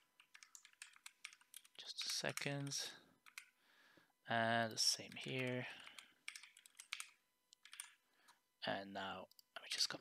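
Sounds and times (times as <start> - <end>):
faint keyboard keystrokes: 4.6 - 8.0.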